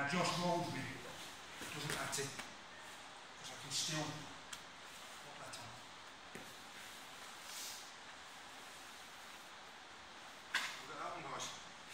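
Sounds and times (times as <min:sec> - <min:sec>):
rustling of bodies on a mat: 0:00.0 - 0:11.9.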